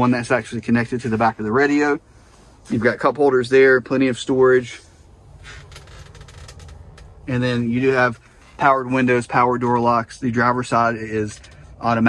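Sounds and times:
low steady rumble: 0:00.0 - 0:12.0.

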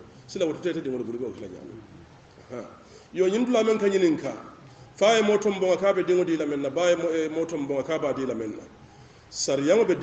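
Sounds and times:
man preaching: 0:00.3 - 0:01.9, 0:02.5 - 0:08.7, 0:09.4 - 0:10.0.

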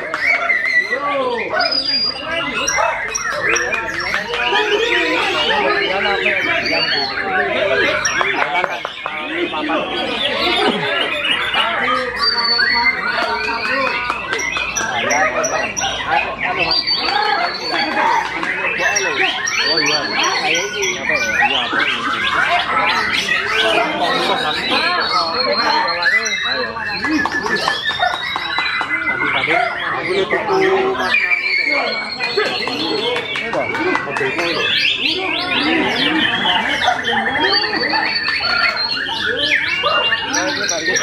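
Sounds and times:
bird singing whistled notes: 0:00.0 - 0:33.2
crowd chattering: 0:00.0 - 0:41.0.

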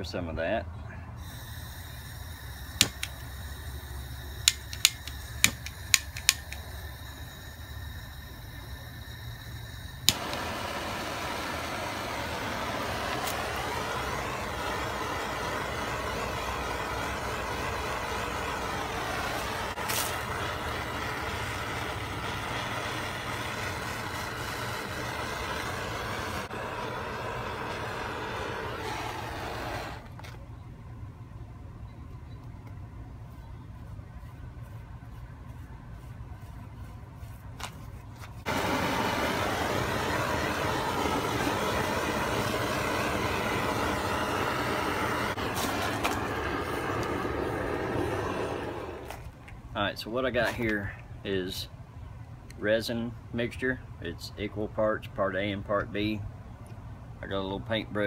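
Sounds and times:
low machinery rumble: 0:00.0 - 0:37.2, 0:38.4 - 0:50.2
gas torch igniter clicks: 0:01.2 - 0:07.4, 0:08.1 - 0:16.2, 0:17.0 - 0:30.3, 0:38.5 - 0:49.3
gas torch flame hissing: 0:01.2 - 0:30.3, 0:38.4 - 0:49.4.

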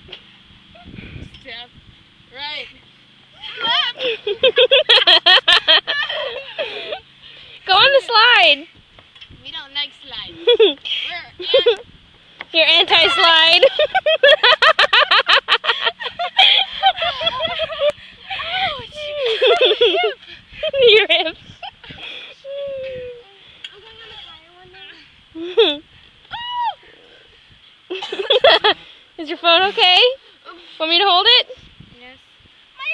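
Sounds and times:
girls laughing and exclaiming: 0:02.4 - 0:08.6, 0:10.0 - 0:11.9, 0:12.6 - 0:27.1, 0:27.9 - 0:31.6.

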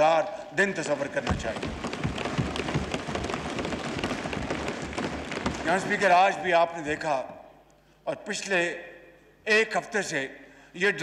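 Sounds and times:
hands thumping desks: 0:01.2 - 0:06.1.

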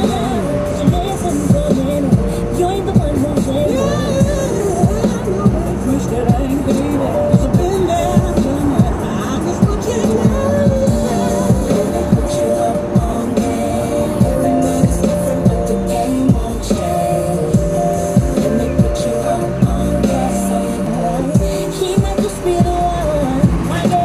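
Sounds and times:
music with singing on car radio: 0:00.0 - 0:24.0.

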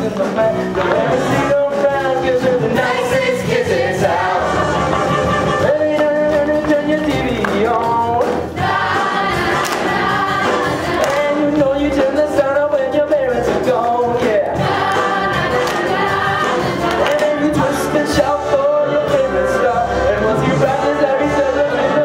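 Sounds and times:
instrumental accompaniment: 0:00.0 - 0:22.0
chorus of singers: 0:00.6 - 0:06.0, 0:08.5 - 0:12.4, 0:14.2 - 0:22.0.

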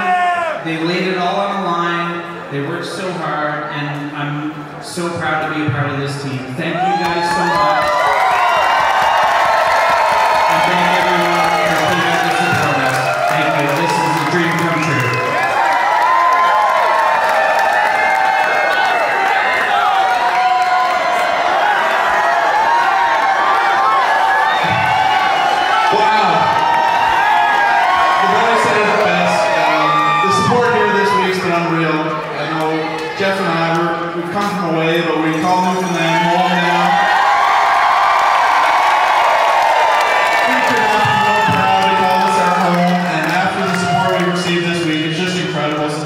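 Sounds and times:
crowd cheering and singing: 0:00.0 - 0:46.0.

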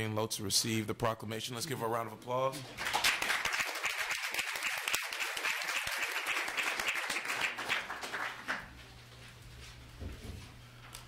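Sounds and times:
audience applause: 0:02.7 - 0:08.8.

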